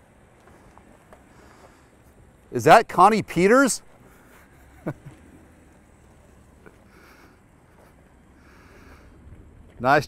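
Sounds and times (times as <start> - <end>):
faint low car engine rumble: 0.0 - 10.0.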